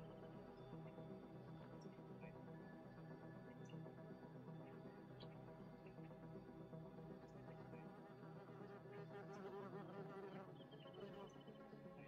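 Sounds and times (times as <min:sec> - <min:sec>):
quiet ambient music: 0:00.0 - 0:12.0.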